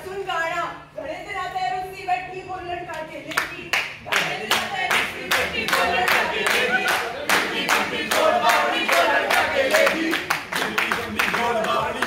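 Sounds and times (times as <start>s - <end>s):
hands clapping rhythmically: 2.9s - 12.0s.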